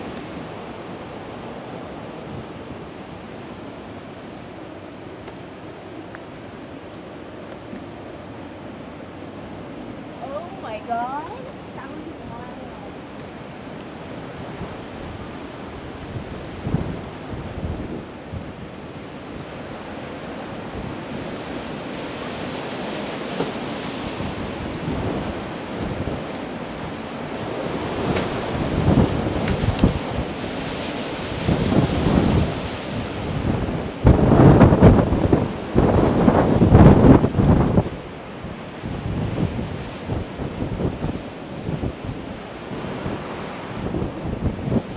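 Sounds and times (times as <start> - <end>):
wind buffeting microphone: 0.0 - 44.9.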